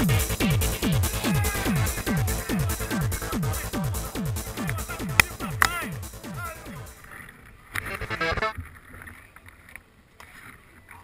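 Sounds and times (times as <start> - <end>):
short pitched sound: 7.8 - 8.6.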